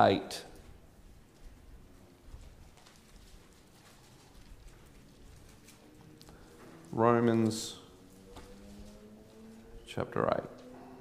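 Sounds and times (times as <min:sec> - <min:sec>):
pages being turned: 0:02.4 - 0:09.1.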